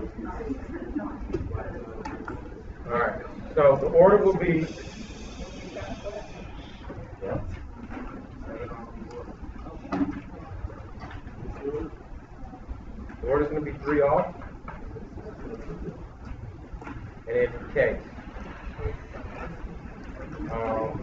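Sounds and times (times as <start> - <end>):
indistinct talking: 0.0 - 21.0.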